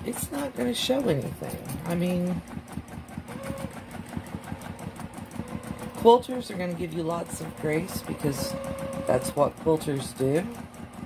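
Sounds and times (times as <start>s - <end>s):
sewing machine stitching: 0.0s - 11.0s.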